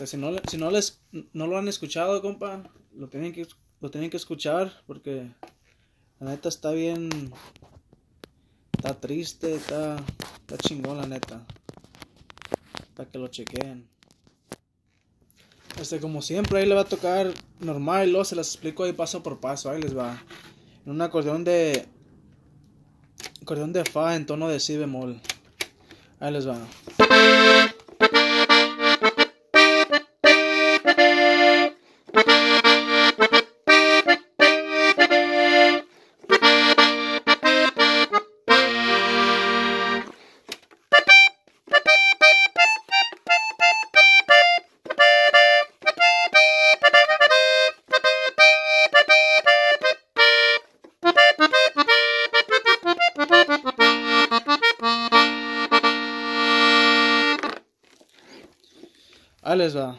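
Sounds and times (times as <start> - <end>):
button accordion playing: 26.9 - 40.2, 40.8 - 57.6.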